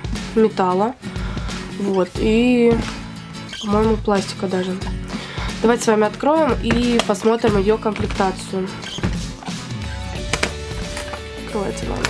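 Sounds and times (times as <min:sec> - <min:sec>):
background music: 0:00.0 - 0:12.0
metal latch snapping open: 0:08.8 - 0:09.6.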